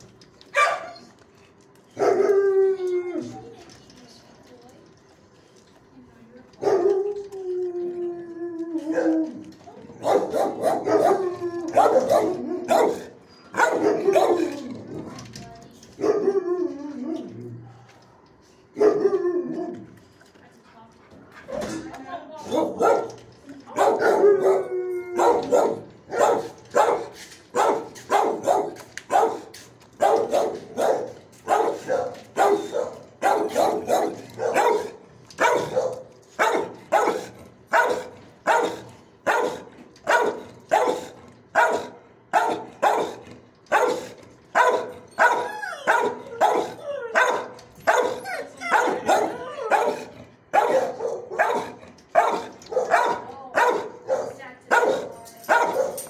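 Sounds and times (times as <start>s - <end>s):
dog howling bark: 2.0s - 3.3s, 8.6s - 14.7s, 16.0s - 17.4s, 18.8s - 19.9s, 23.8s - 27.0s, 27.6s - 56.0s
dogs barking with echo: 10.0s - 14.7s, 23.8s - 56.0s.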